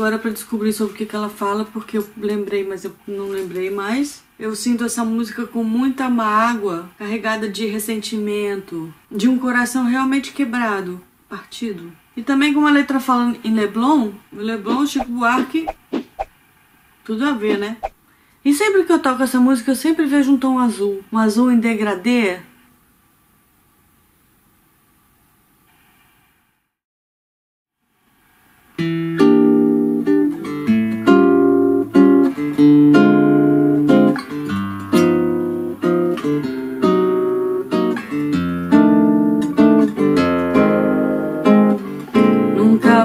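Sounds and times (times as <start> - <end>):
classical guitar plucked melody: 28.8 - 43.0.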